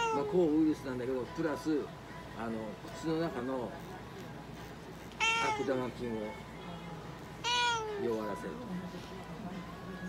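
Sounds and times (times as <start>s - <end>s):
cat meowing: 0.0s - 0.4s, 5.2s - 5.8s, 7.4s - 8.1s.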